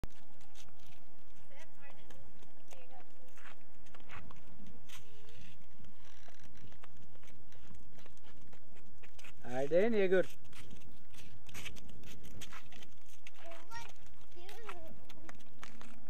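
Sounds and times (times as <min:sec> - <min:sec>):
flip-flops slapping on asphalt: 0:00.1 - 0:16.0.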